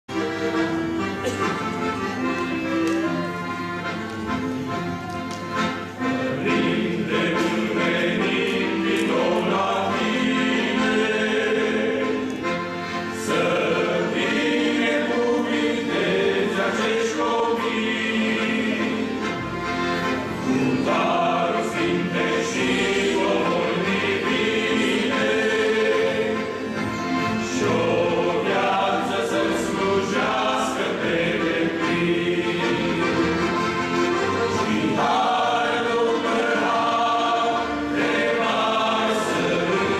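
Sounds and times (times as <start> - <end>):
men singing in harmony: 6.3 - 12.5, 13.2 - 19.2, 20.6 - 26.6, 27.4 - 33.3, 34.5 - 39.9.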